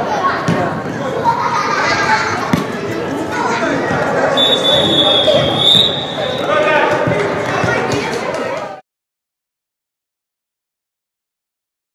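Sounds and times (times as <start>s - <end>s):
young players calling: 1.9s - 8.3s.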